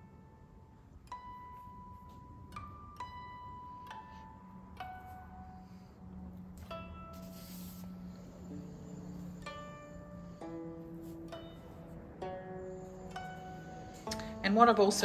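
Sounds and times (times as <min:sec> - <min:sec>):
plucked zither-like notes: 0:00.0 - 0:15.0.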